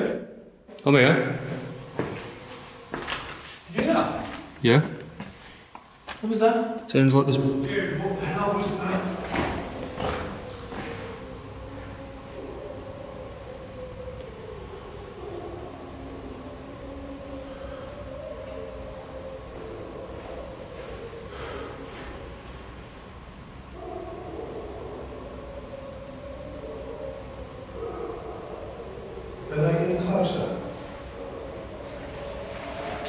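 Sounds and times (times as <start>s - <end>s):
faint howling: 0.0s - 33.0s
faint steady hum: 0.0s - 33.0s.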